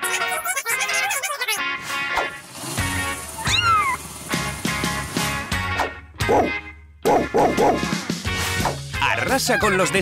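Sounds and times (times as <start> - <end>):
music: 0.0 - 10.0
dog barking: 6.2 - 7.8.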